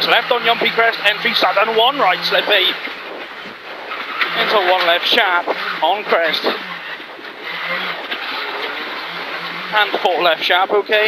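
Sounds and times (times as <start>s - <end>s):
car engine pulling: 0.0s - 11.0s
tyres on gravel road: 0.0s - 11.0s.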